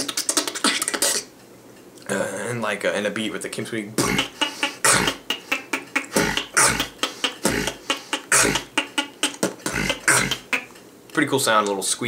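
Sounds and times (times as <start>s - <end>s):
beatboxing: 0.0s - 1.3s, 4.0s - 10.8s.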